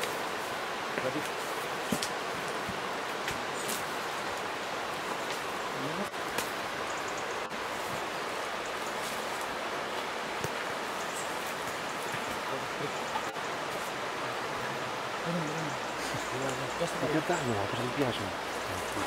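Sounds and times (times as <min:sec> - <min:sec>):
brush and twigs rustling and snapping: 0:00.0 - 0:05.6, 0:06.2 - 0:06.6, 0:08.7 - 0:12.5.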